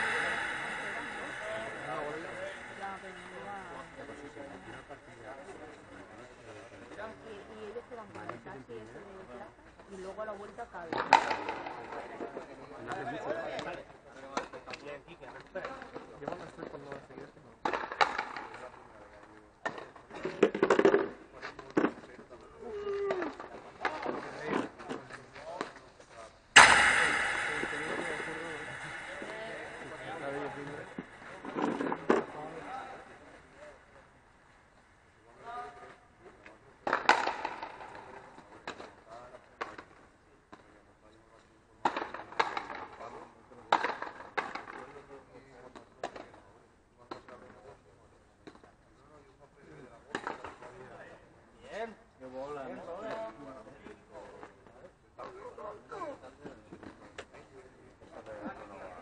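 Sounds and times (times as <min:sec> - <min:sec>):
loud ringing bang: 0:00.0 - 0:05.3, 0:26.6 - 0:33.2.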